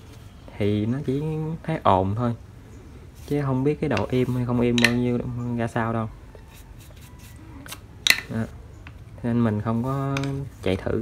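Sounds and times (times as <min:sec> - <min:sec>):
metal parts being handled: 0:03.2 - 0:05.4, 0:07.2 - 0:09.1
hand tool clicks: 0:04.7 - 0:05.2, 0:07.7 - 0:09.0.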